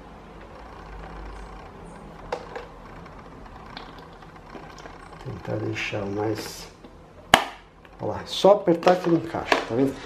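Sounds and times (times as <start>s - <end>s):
plastic clicks and knocks: 2.2s - 3.1s.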